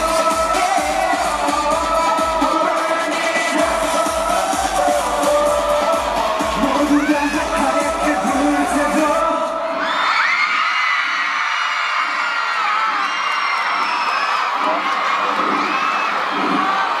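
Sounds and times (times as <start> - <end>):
song music: 0.0 - 9.8
crowd screaming and cheering: 0.0 - 17.0.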